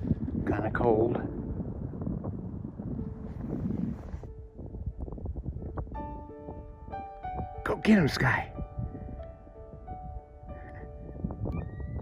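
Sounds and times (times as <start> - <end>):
wind buffeting microphone: 0.0 - 12.0
background music with held notes: 3.0 - 12.0.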